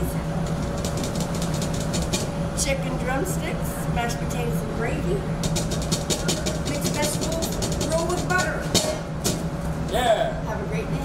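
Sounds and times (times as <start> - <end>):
steady low hum: 0.0 - 11.0
quick irregular taps and knocks: 0.4 - 2.3, 5.4 - 9.5
voices: 2.5 - 5.4, 6.1 - 9.2, 9.9 - 11.0.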